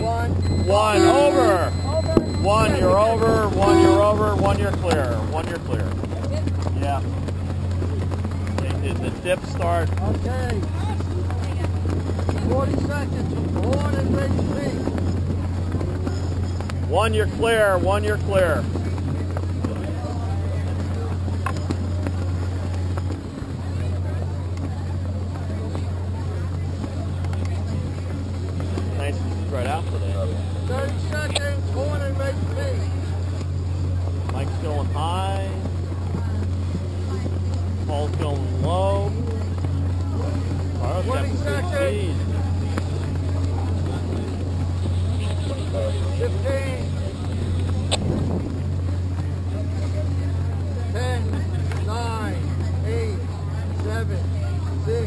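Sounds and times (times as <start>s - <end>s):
indistinct voices talking: 0.0s - 55.0s
low motor hum: 0.0s - 55.0s.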